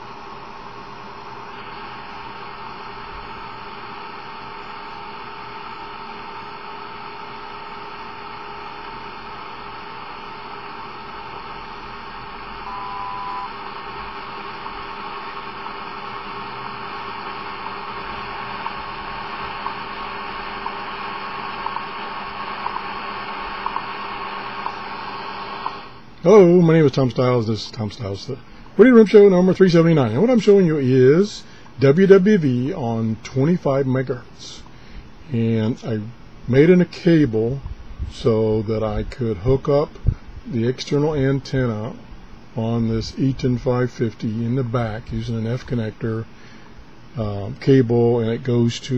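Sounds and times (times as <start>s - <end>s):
shortwave radio static: 0.0s - 31.2s
brief radio tone: 12.6s - 13.8s.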